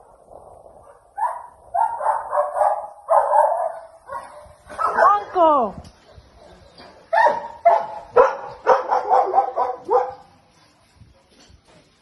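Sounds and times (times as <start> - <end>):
dog barking: 0.9 - 5.3, 7.1 - 10.3.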